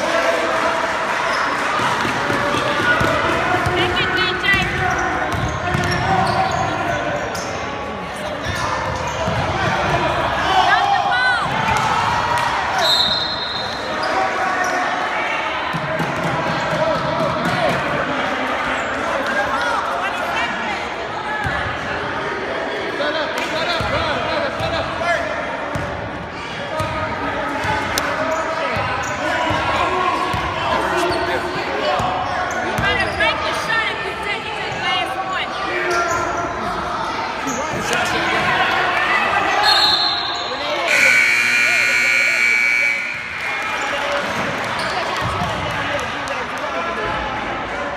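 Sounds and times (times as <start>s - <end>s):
spectators' voices echoing: 0.0s - 47.9s
sneakers squeaking: 3.6s - 10.0s, 39.6s - 45.6s.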